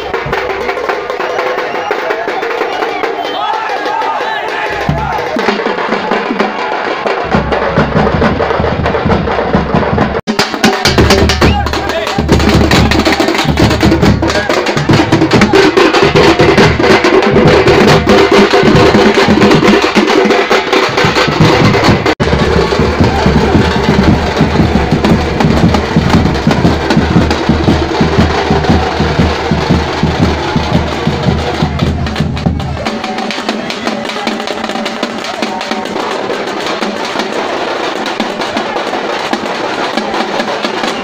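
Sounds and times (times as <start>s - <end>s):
street drumming on hand drums: 0.0s - 41.0s.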